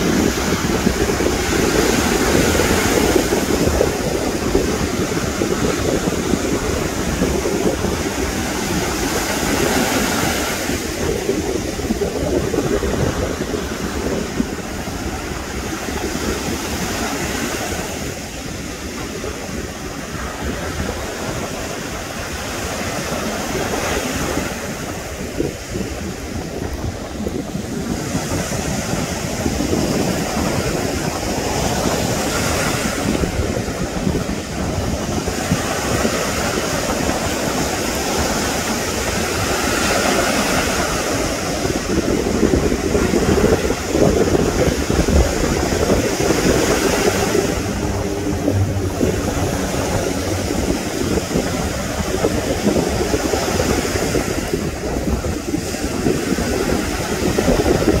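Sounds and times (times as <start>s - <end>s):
surf breaking and washing ashore: 0.0s - 58.0s
wind buffeting microphone: 0.0s - 58.0s.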